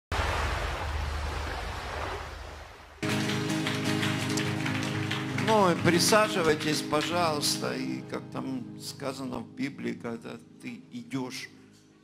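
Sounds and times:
man's voice: 5.3 - 11.6.

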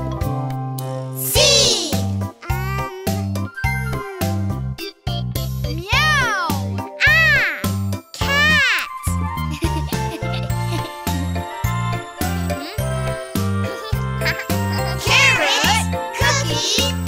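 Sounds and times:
children's song music: 0.0 - 17.0.

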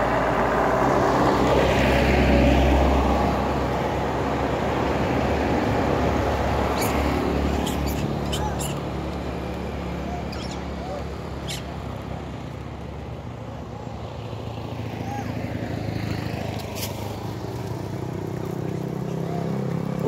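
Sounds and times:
motorcycle engines: 0.0 - 20.0.

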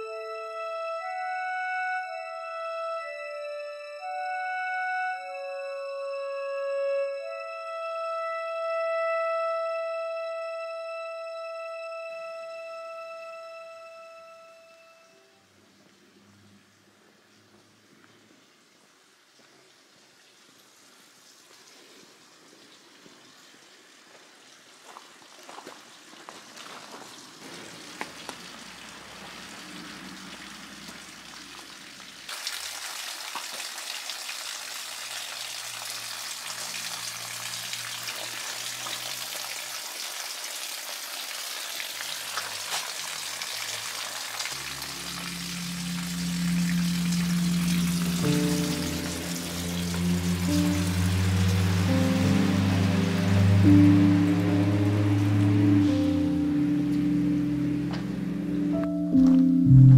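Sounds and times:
music with long low notes: 0.0 - 15.4, 44.5 - 59.9
water pouring and splashing on stones: 18.1 - 46.1.

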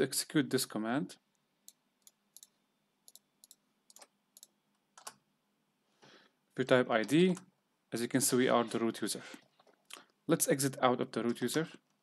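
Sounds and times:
computer mouse and keyboard clicks: 3.1 - 5.2.

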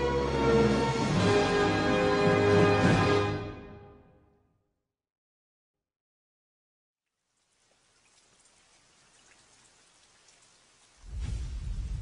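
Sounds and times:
faint hiss with tiny crackles: 7.1 - 12.0.

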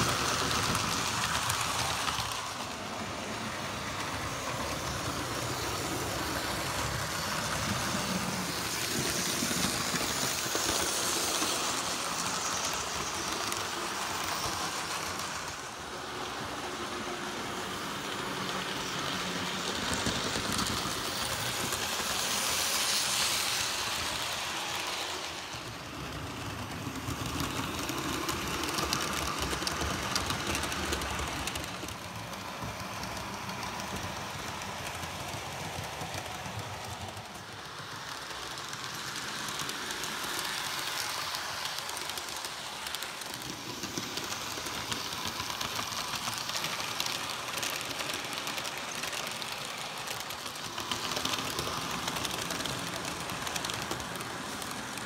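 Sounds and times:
model trains running on track: 0.0 - 55.0.

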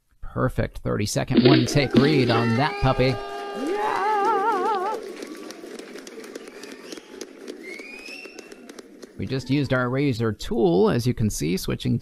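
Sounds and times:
warbling tone: 1.3 - 2.9
rising whistle: 6.4 - 8.7.

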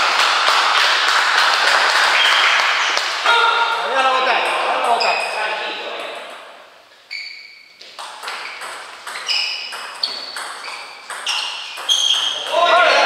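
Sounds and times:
voices: 12.2 - 13.0.

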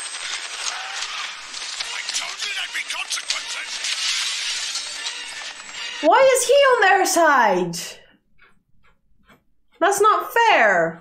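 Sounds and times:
crackle of breaking debris: 0.0 - 6.0.

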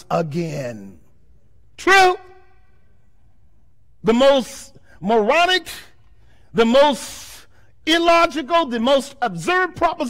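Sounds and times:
man speaking loudly: 0.0 - 1.0, 1.8 - 2.4, 4.0 - 10.0
low room tone: 0.0 - 10.0.

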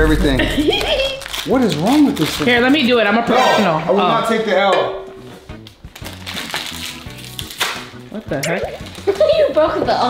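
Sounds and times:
background music with bass line: 4.9 - 10.0.

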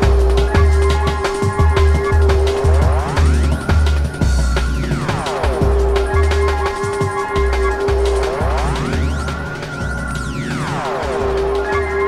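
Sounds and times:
fast broken drum beat: 0.0 - 12.0
heavy sub-bass line: 0.0 - 12.0
held synth note: 0.0 - 12.0.

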